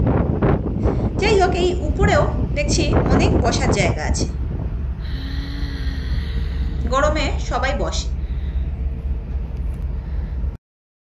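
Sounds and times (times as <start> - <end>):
wind rumble on microphone: 0.0 - 10.6.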